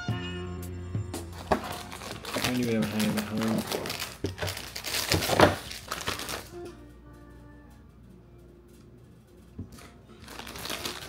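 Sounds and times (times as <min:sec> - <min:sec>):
plastic bag crackling: 0:01.4 - 0:06.6, 0:10.2 - 0:11.0
snack box crinkling: 0:01.4 - 0:06.6, 0:09.8 - 0:11.0.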